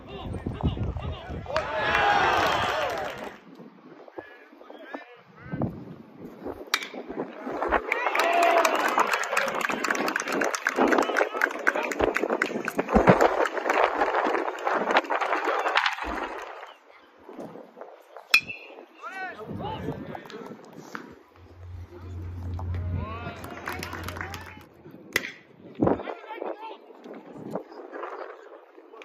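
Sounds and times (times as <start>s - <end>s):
crowd cheering and shouting: 1.0s - 3.4s, 7.8s - 9.7s, 21.4s - 24.7s.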